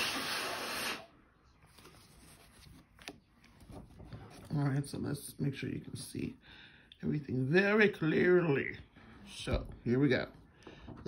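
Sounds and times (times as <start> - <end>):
paper handling: 1.6 - 4.5.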